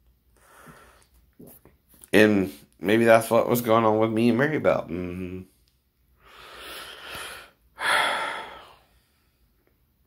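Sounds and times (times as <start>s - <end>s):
man breathing: 0.3s - 1.2s, 6.1s - 9.6s.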